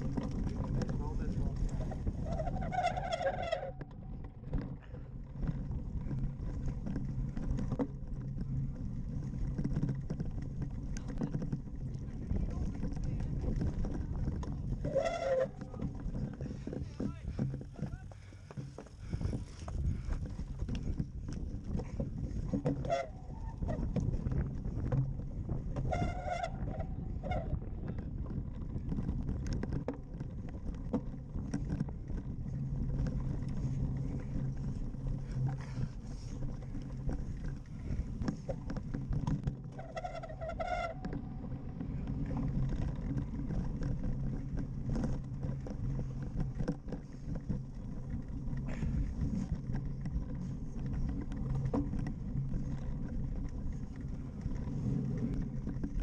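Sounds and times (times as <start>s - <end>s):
low rumble of bike tyres: 0.0s - 56.0s
wind buffeting microphone: 0.0s - 56.0s.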